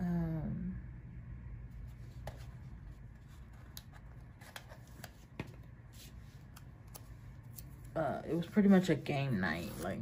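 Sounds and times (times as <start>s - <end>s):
low room hum: 0.0s - 10.0s
paper handling clicks and taps: 3.6s - 5.7s.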